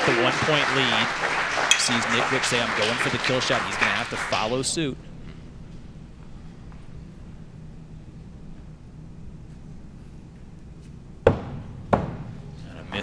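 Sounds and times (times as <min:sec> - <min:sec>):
low steady hum: 0:00.0 - 0:13.0
axes striking wooden targets: 0:11.3 - 0:12.4.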